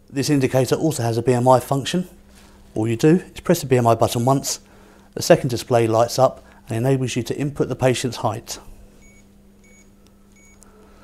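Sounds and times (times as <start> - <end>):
faint steady hum: 0.0 - 11.0
short high keypad beeps: 9.0 - 10.6.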